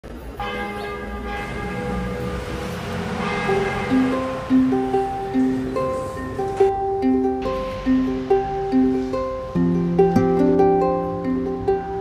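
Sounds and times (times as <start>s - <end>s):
church bell ringing: 0.4s - 6.7s
plucked music: 1.7s - 12.0s.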